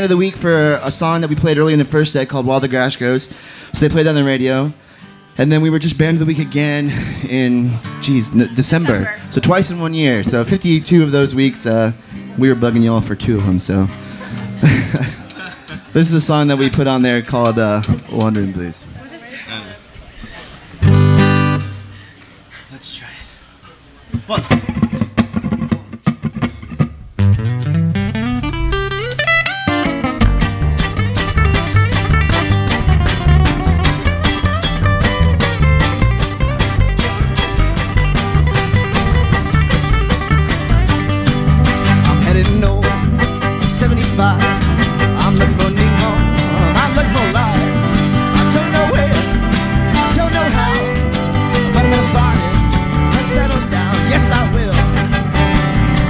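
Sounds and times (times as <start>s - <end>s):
acoustic string band playing: 5.4s - 18.4s, 20.6s - 22.0s, 27.3s - 56.0s.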